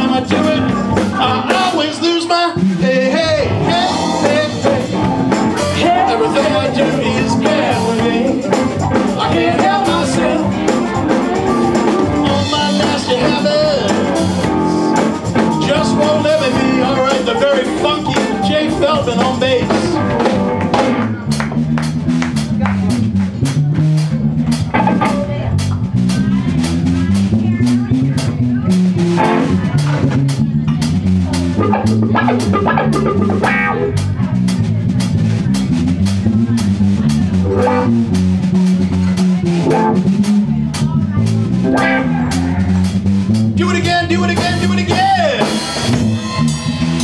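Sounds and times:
blues-rock band playing: 0.0s - 47.0s
electric bass solo: 0.0s - 47.0s
steady drum beat: 0.0s - 47.0s.

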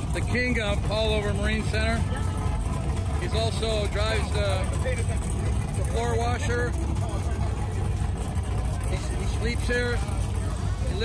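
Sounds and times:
boat engines idling: 0.0s - 11.0s.

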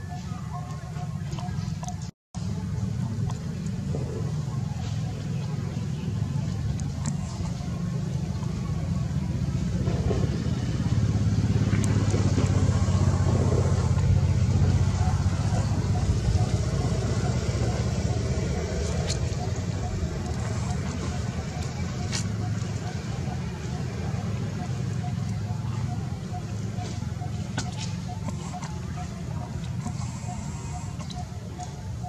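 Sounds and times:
low motor rumble: 0.0s - 32.0s.

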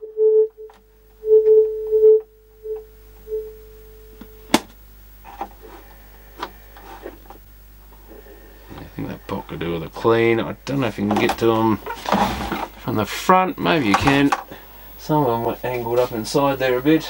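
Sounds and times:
steady test tone: 0.0s - 4.6s.

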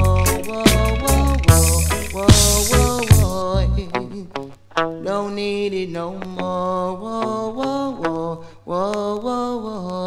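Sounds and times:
sharp percussive ticks: 0.0s - 3.4s
reggae music with chant-like vocals: 0.0s - 10.0s.

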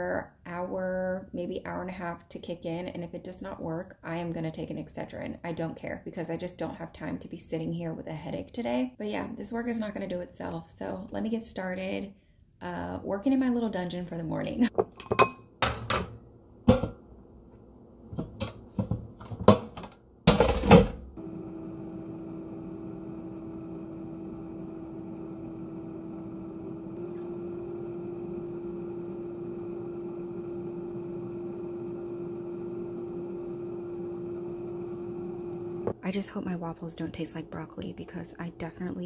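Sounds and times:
air fryer fan hum: 20.3s - 36.0s.

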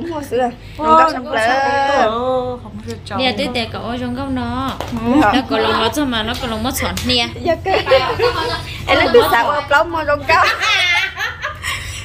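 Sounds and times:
woman laughing: 7.6s - 9.4s, 10.3s - 12.0s.

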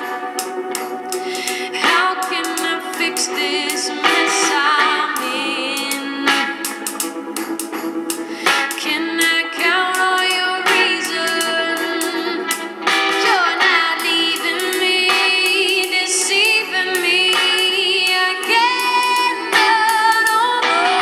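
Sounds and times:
thin song through speaker: 0.0s - 21.0s.

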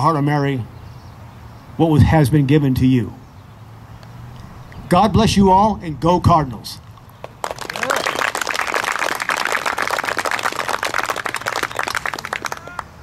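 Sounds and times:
small audience applauding: 7.0s - 13.0s
voices: 11.0s - 12.9s.

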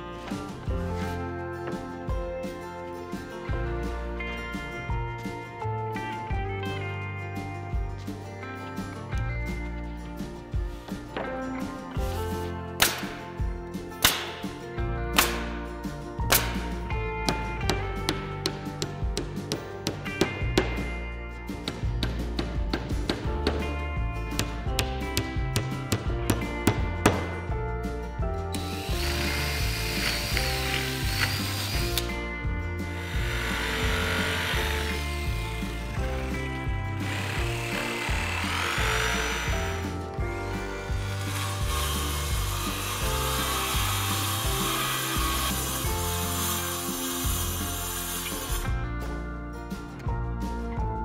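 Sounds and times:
background music: 0.0s - 51.0s
hammer tapping nails: 17.2s - 20.9s, 21.6s - 27.4s
circular saw cutting: 28.6s - 32.1s, 32.9s - 36.4s, 37.0s - 48.7s
jigsaw cutting: 28.6s - 32.1s, 33.0s - 36.4s, 37.0s - 48.7s
power saws cutting plywood: 28.6s - 32.1s, 32.9s - 48.7s.

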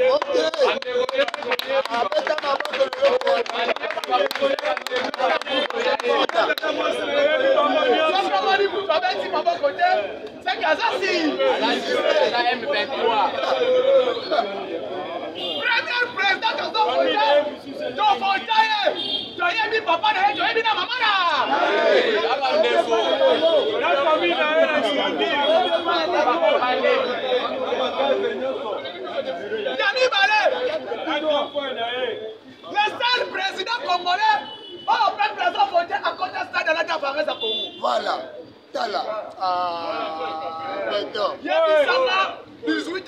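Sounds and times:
man addressing a crowd: 0.0s - 43.0s
men talking over one another: 0.0s - 43.0s
voices chattering: 0.0s - 43.0s.

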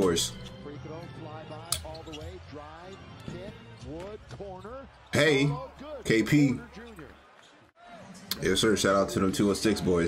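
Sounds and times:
commentator talking: 0.0s - 7.2s
arena noise: 0.5s - 10.0s.

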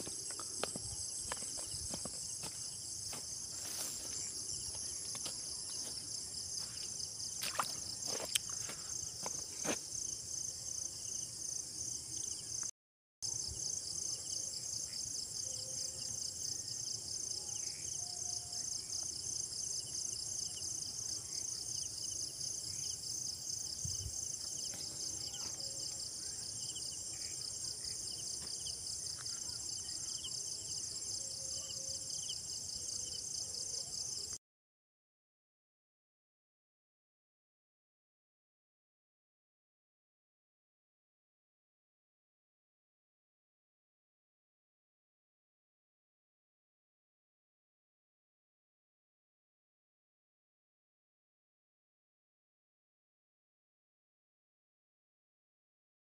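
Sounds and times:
insects trilling: 0.0s - 11.6s, 13.3s - 34.3s.

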